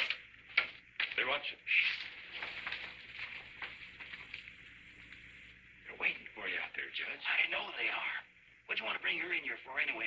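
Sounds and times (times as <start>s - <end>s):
people speaking: 1.1s - 2.2s, 5.8s - 10.0s.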